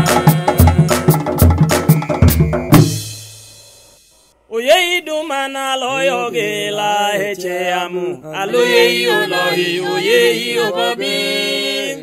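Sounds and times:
voices singing gospel song: 0.0s - 3.0s, 4.6s - 12.0s.

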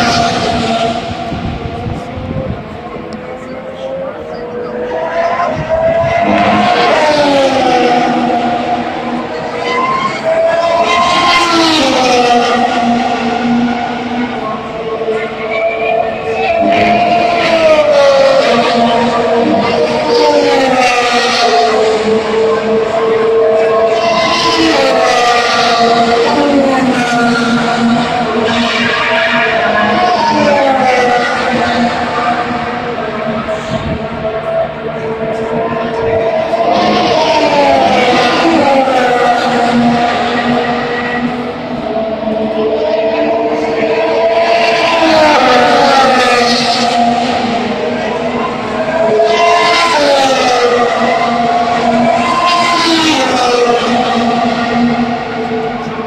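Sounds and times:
racing cars passing at speed: 0.0s - 56.0s.

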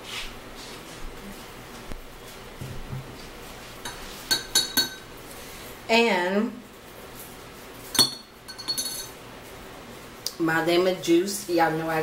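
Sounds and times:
glassware clinking: 3.9s - 5.1s, 7.9s - 9.2s.

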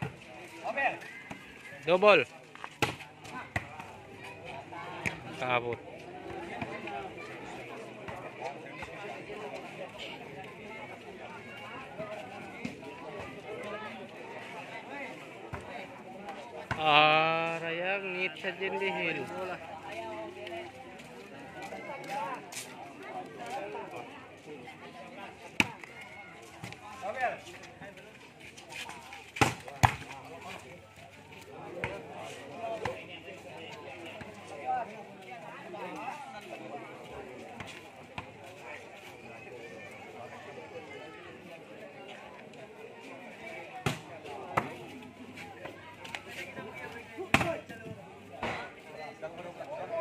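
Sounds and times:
spectators talking faintly: 0.0s - 50.0s.

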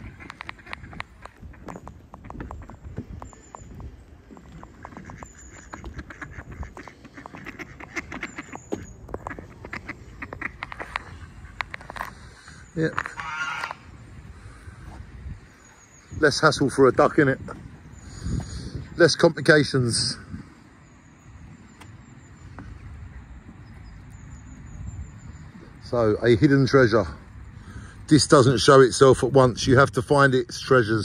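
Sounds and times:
ducks quacking: 0.0s - 1.8s, 4.4s - 15.0s.

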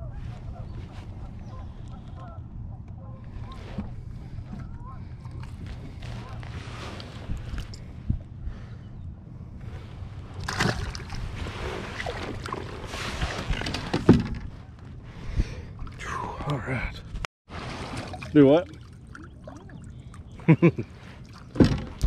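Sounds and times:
steady low rumble: 0.0s - 11.6s
water lapping against hull: 0.1s - 16.4s, 17.5s - 22.0s.

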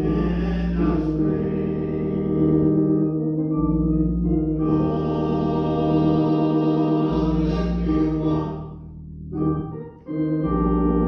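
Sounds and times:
men's choir singing: 0.0s - 3.1s, 4.6s - 8.7s
church organ: 0.0s - 11.0s.

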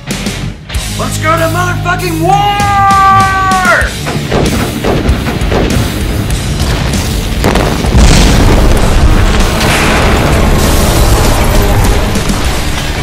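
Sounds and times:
music: 0.0s - 13.0s
booming sound effects: 4.2s - 13.0s.

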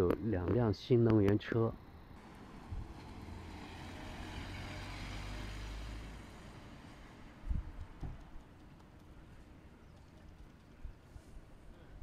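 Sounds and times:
car passing: 2.2s - 10.6s.

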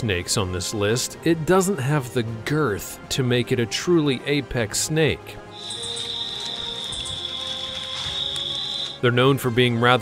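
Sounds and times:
faint background music: 0.0s - 10.0s
high-pitched insect call: 5.5s - 9.0s.

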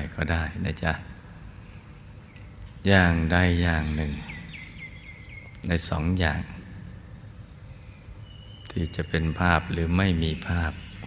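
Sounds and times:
bird chirping faintly: 1.8s - 11.0s
man speaking: 2.8s - 4.3s, 5.6s - 6.6s, 8.7s - 10.9s.

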